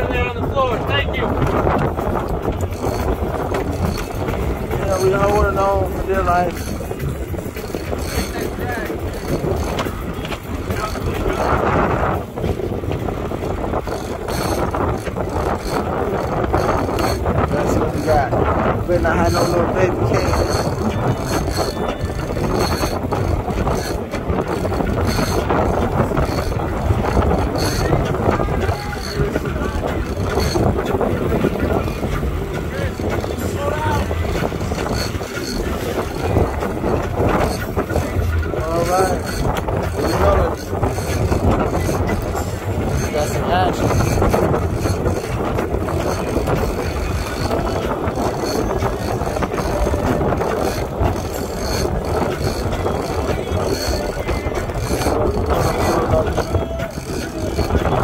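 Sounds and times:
boat engine running: 0.0s - 58.0s
sea noise: 0.0s - 58.0s
wind on microphone: 0.0s - 58.0s
indistinct voices: 13.9s - 58.0s.

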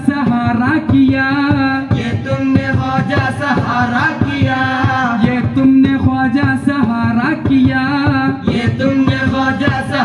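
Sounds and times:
men's chorus singing: 0.0s - 10.0s.

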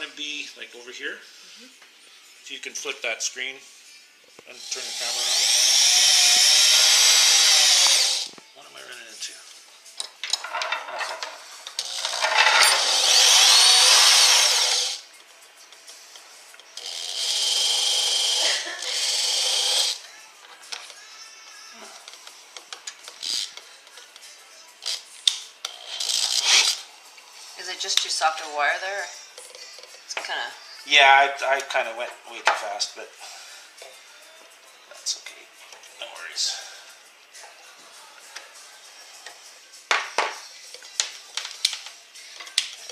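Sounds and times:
electric drill motor whine: 4.7s - 8.3s, 11.8s - 15.0s, 16.8s - 20.0s.

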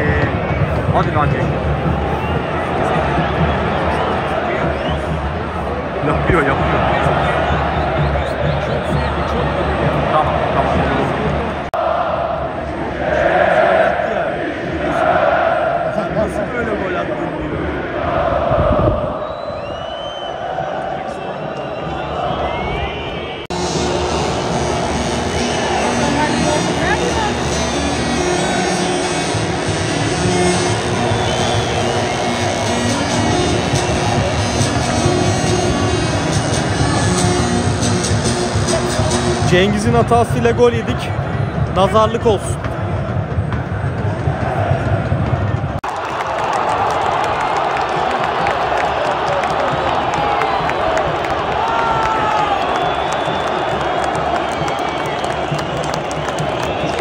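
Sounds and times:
football crowd chanting: 10.8s - 22.6s
crowd singing: 11.6s - 16.4s, 17.3s - 21.7s.

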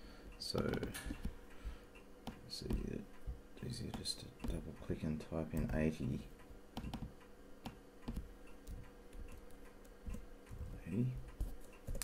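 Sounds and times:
faint steady hum: 0.0s - 12.0s
keyboard and mouse clicks: 0.5s - 1.4s, 2.2s - 3.0s, 3.6s - 4.9s, 6.8s - 10.7s.

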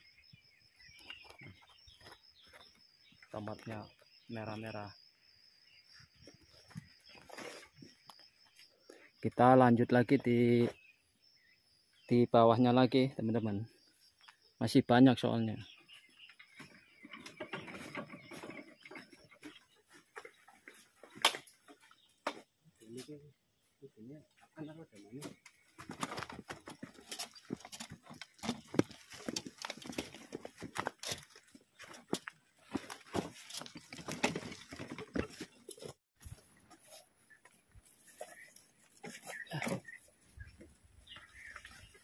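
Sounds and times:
plastic crates knocking and rattling: 16.5s - 19.8s, 32.1s - 36.0s
footsteps: 25.2s - 42.0s.

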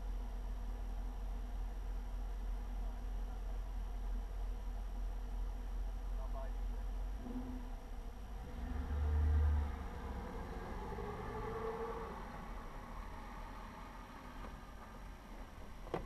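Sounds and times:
low vehicle rumble: 0.0s - 16.0s.

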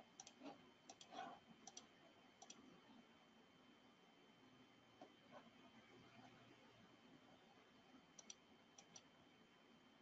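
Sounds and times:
computer mouse clicks: 0.2s - 2.7s, 8.2s - 9.1s.

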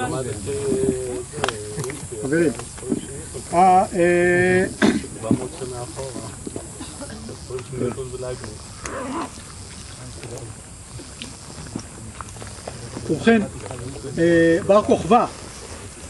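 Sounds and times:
quiet scattered talk: 0.0s - 16.0s.

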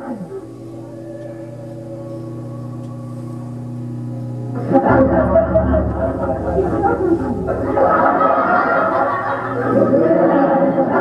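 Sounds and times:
drone music low held tones: 0.0s - 11.0s
loud dense wash of sound: 4.8s - 10.3s.

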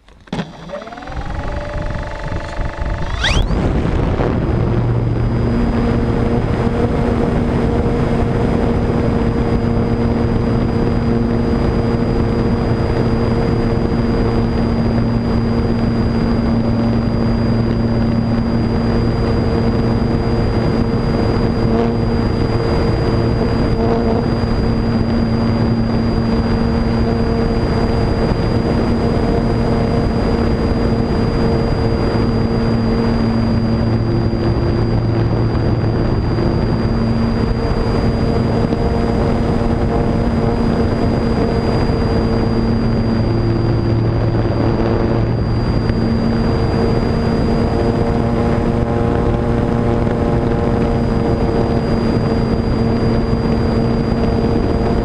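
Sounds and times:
electric motor and propeller whine: 0.0s - 55.0s.

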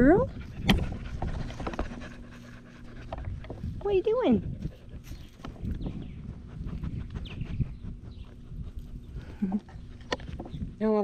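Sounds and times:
dog panting and snuffling: 0.0s - 10.2s.

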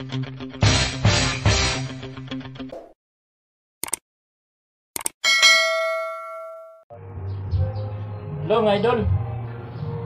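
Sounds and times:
clicks: 5.0s - 5.2s
bright bell ding: 5.2s - 6.8s.

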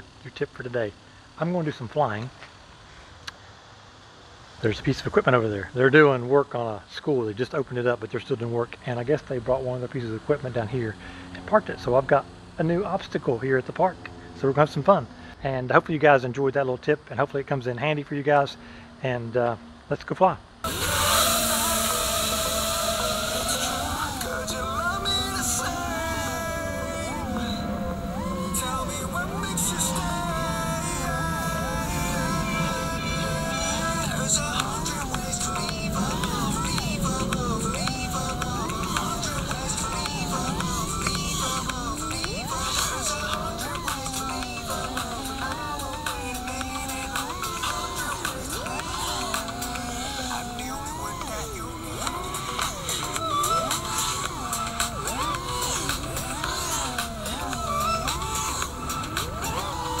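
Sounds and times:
drone motors whining: 20.6s - 60.0s.

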